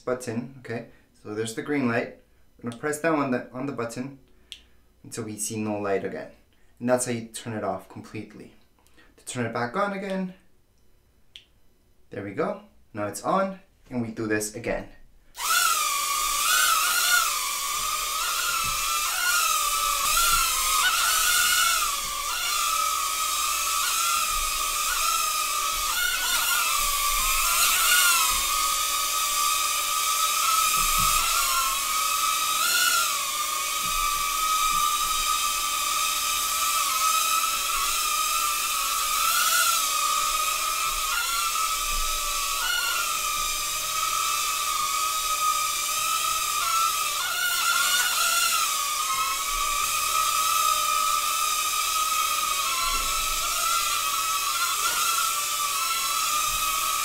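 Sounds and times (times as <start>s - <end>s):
drone propellers whining: 15.4s - 57.0s.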